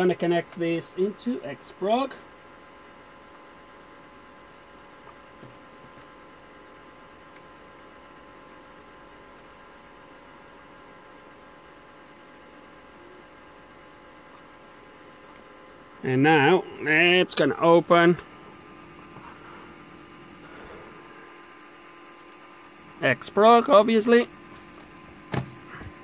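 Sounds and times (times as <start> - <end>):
electrical mains hum: 0.0 - 26.0.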